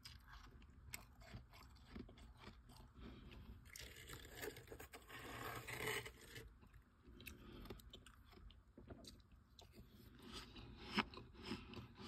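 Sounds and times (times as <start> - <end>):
frost being chewed: 0.0 - 12.0.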